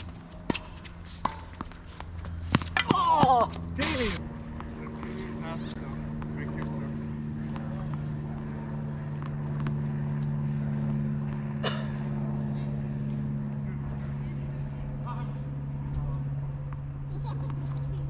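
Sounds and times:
low motor hum: 0.0s - 18.0s.

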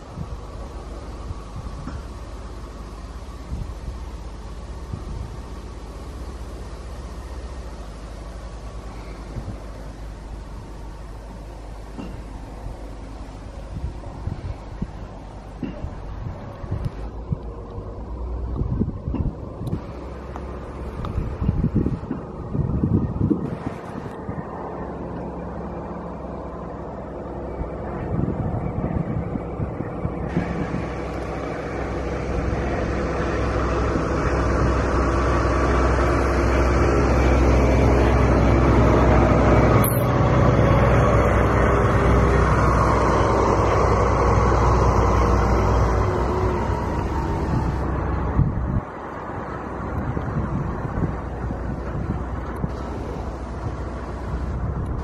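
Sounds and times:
wind on microphone: 0.0s - 2.5s, 3.4s - 5.8s, 8.7s - 11.4s, 12.6s - 25.2s, 25.9s - 55.0s
road vehicle passing: 0.0s - 55.0s.

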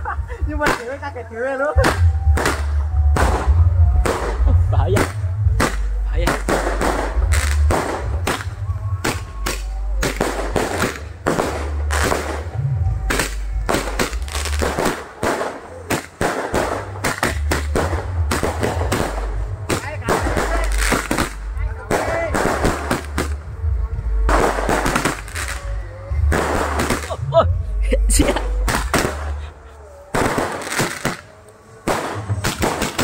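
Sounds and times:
fireworks bangs: 0.5s - 27.3s, 27.9s - 33.0s
deep low rumble: 1.7s - 15.9s, 16.5s - 32.8s.

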